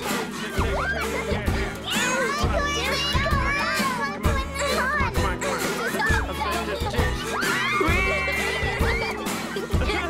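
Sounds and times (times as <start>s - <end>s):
cartoon children shrieking: 7.0s - 9.6s.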